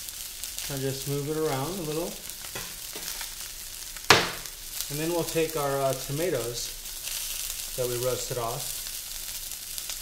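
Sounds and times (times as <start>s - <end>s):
fish sizzling in oil: 0.0s - 10.0s
sharp knock on pan: 4.1s - 4.5s.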